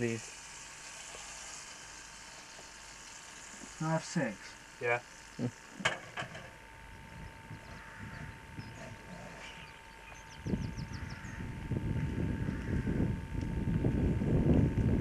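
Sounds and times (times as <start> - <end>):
wind buffeting microphone: 6.9 - 15.0.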